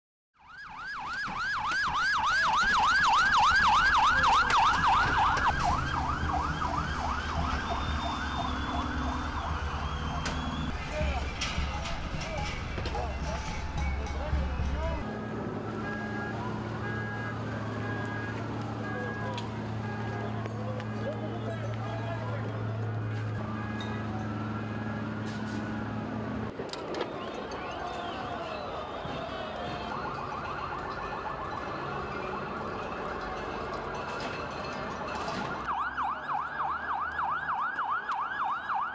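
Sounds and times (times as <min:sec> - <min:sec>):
police siren yelp: 0:00.4 - 0:10.8, 0:15.0 - 0:38.9
police siren wails: 0:00.4 - 0:13.6, 0:15.0 - 0:38.9.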